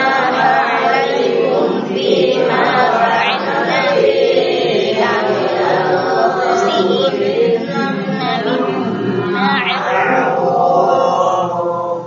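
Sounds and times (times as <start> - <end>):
group chanting in unison: 0.0 - 12.0.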